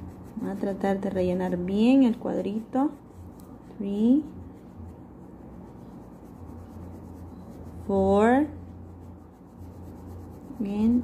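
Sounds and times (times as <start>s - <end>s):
crayon rubbing on paper: 0.0s - 3.3s, 4.1s - 11.0s.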